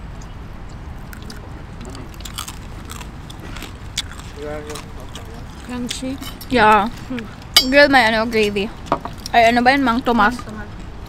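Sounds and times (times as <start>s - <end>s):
crunching crispy pork skin: 1.0s - 6.4s.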